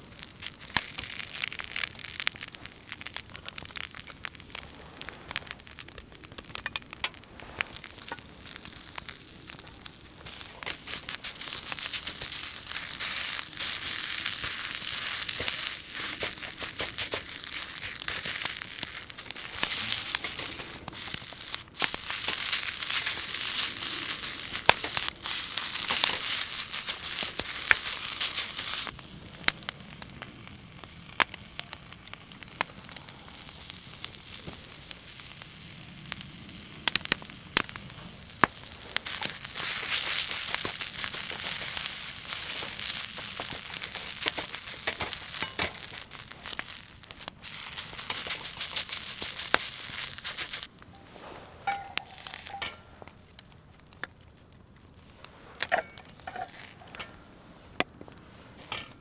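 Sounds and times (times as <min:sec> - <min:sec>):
fire crackling: 0:00.0 - 0:59.0
rice sizzling in a pan: 0:00.0 - 0:59.0
metal ladle scraping a pan: 0:51.0 - 0:52.8.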